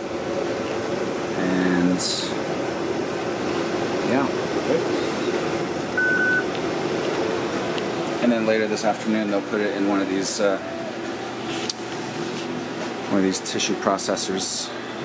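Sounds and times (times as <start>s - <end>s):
ventilation noise: 0.0s - 15.0s
high beep: 6.0s - 6.4s.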